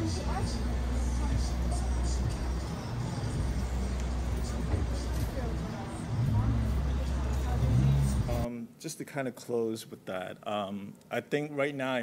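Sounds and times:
faint voices of passersby: 0.0 - 8.5
road traffic rumble: 0.0 - 8.5.

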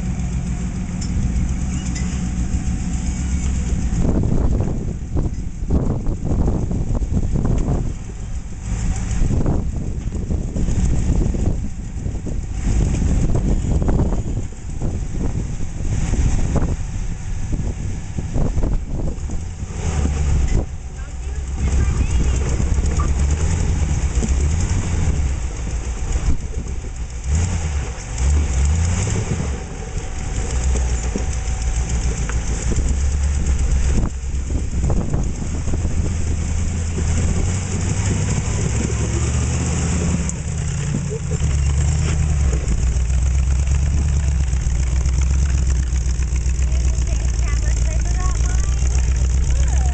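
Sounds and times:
buggy engine revving: 0.0 - 49.9.

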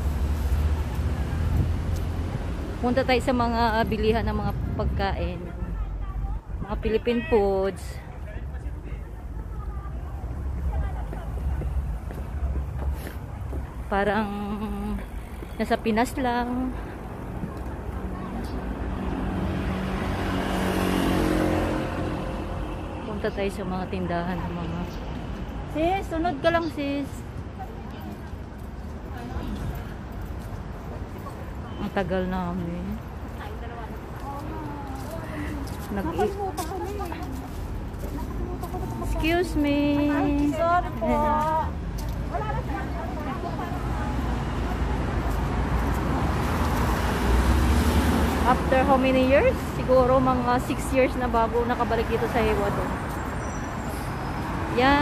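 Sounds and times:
vehicle passing on road: 0.0 - 27.4, 32.7 - 55.0.

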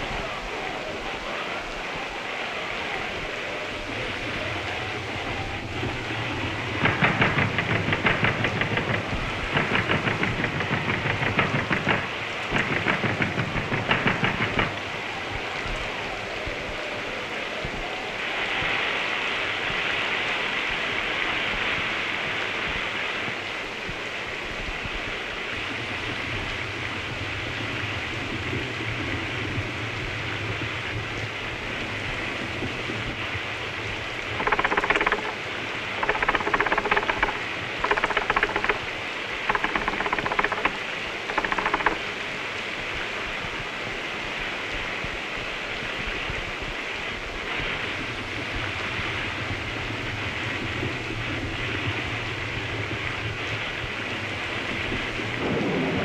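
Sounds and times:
heavy rain: 0.0 - 56.0
fast regular rattling: 5.8 - 14.8, 34.2 - 42.2.

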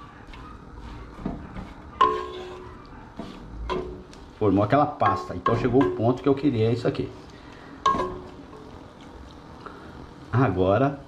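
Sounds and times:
wooden spoon stirring vegetables: 0.0 - 9.8
spoon knocking against pot: 1.2 - 2.8, 3.7 - 4.1, 5.0 - 6.2, 7.9 - 8.7.

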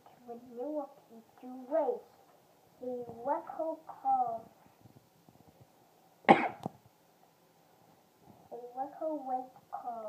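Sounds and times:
person coughing: 6.3 - 6.6.

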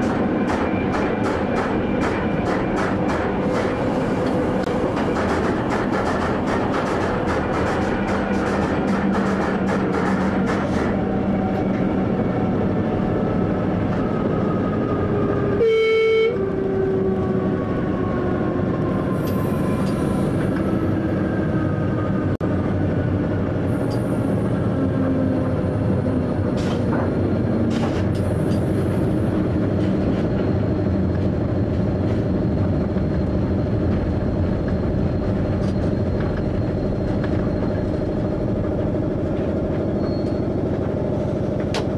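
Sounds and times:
train rumble with falling whine: 0.0 - 41.9
train horn blast: 15.6 - 16.7.

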